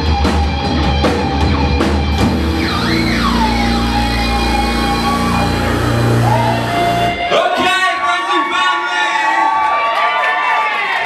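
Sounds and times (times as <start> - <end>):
rock band holding note: 0.6 - 8.0
steady low drone: 2.0 - 7.3
high sliding wavering tone: 2.3 - 7.3.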